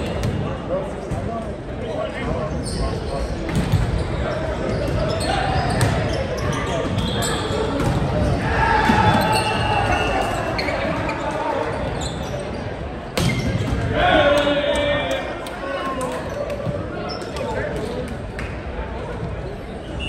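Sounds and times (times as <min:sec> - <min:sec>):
players shouting: 0:08.2 - 0:11.8.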